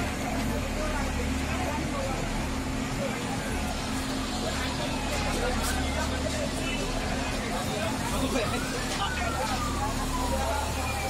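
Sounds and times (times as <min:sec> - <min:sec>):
distant voices: 0:00.0 - 0:11.0
siren wailing: 0:07.5 - 0:11.0.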